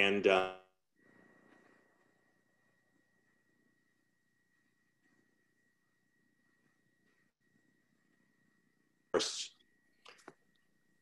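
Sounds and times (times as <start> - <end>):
faint steady high tone: 0.0 - 11.0
low hum: 0.7 - 11.0.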